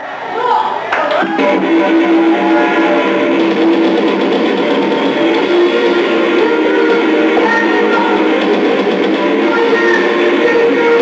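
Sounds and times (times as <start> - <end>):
live rock band playing: 1.2 - 11.0
sustained electric guitar notes: 1.2 - 11.0.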